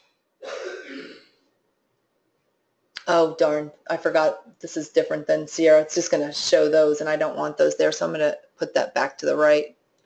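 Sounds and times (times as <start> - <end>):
woman clearing her throat: 0.4 - 1.3.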